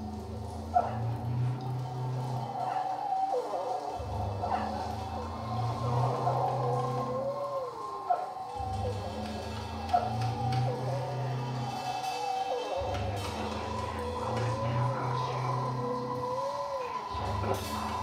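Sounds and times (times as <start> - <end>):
wavering gliding wails: 0.0 - 18.0.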